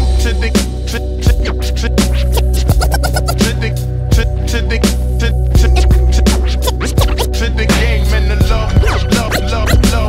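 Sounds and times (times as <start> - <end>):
bass line: 0.0 - 10.0
hip hop instrumental beat: 0.0 - 10.0
turntable scratching: 0.9 - 3.7, 5.5 - 10.0.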